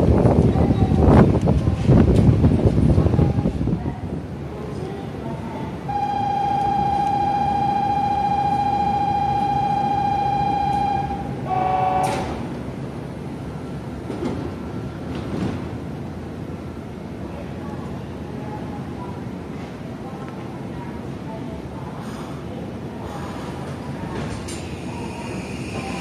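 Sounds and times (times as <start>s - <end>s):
warbling electronic departure tone: 5.9s - 11.3s
short chord-like tone: 6.0s - 12.1s
train doors closing knock: 6.0s - 12.5s.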